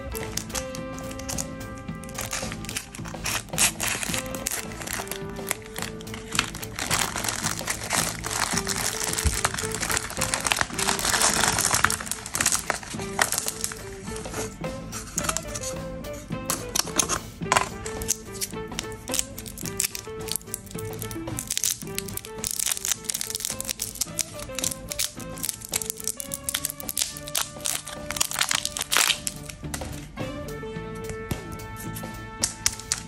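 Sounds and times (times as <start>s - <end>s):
wrapper crinkling: 0.0s - 15.8s, 16.5s - 30.1s, 31.9s - 33.0s
background music: 0.0s - 33.0s.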